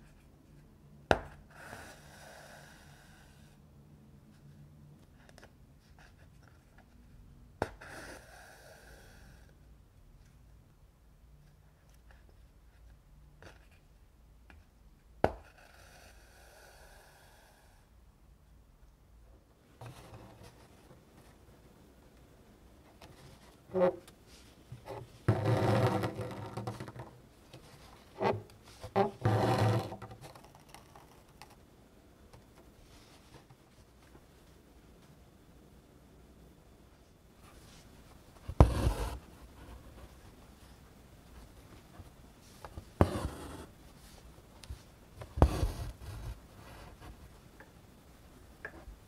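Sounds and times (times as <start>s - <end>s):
thread pulled through canvas: 23.0s - 31.3s.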